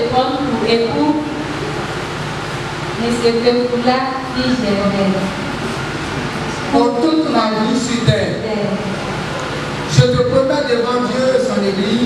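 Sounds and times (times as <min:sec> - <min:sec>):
woman's voice: 0:00.0 - 0:01.4, 0:03.0 - 0:05.4.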